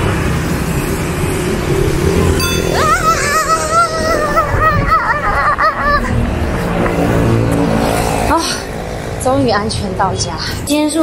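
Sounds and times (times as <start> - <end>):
cars passing: 0.0 - 11.0
motorbikes passing: 0.0 - 11.0.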